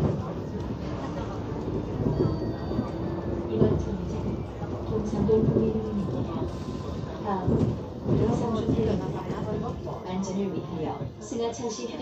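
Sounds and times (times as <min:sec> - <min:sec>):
bus engine and road noise: 0:00.0 - 0:11.2.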